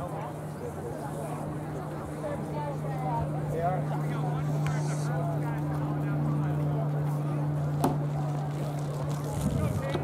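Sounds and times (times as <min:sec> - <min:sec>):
distant voices chattering: 0:00.0 - 0:10.0
low mechanical hum: 0:00.0 - 0:10.0.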